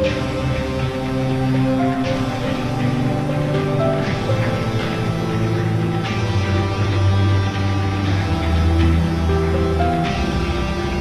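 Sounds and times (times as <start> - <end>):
instrumental music with strong bass: 0.0 - 11.0.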